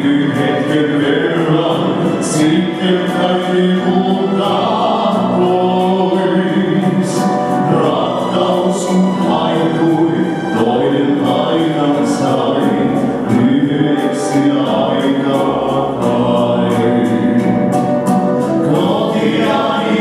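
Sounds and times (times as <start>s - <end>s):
male vocal group singing in harmony: 0.0s - 20.0s.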